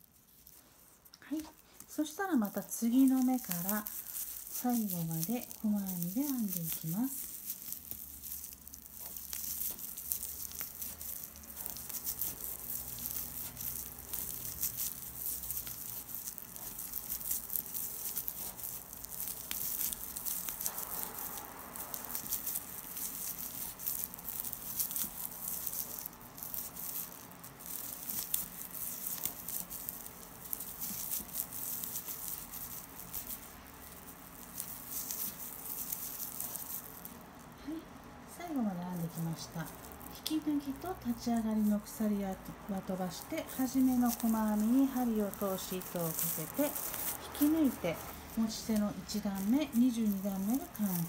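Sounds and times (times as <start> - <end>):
tape yarn rustling and crinkling: 0.0 - 51.0.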